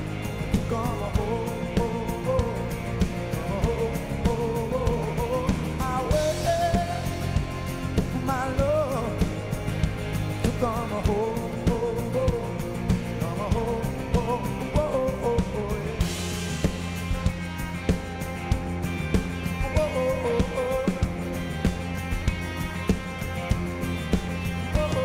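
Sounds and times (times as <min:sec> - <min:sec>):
man singing lead vocal: 0:00.0 - 0:16.8, 0:19.5 - 0:21.9, 0:24.4 - 0:25.0
rock band playing: 0:00.0 - 0:25.0.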